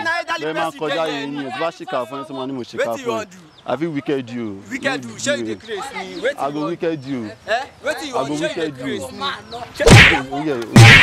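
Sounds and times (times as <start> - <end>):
people's voices: 0.0 - 11.0
loud sharp cracks: 9.9 - 11.0.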